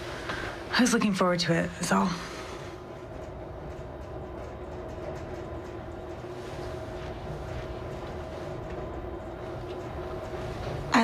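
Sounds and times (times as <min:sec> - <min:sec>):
faint constant hum: 0:00.0 - 0:11.0
elevator car rumbling: 0:02.8 - 0:11.0.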